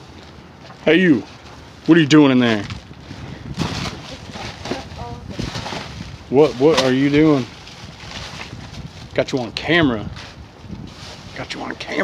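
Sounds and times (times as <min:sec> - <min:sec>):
plastic bags rustling: 0:02.5 - 0:09.2, 0:10.1 - 0:12.0.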